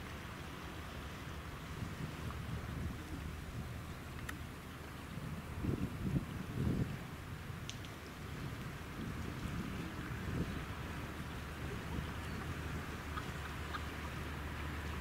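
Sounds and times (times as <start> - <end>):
wind on microphone: 1.6 - 15.0.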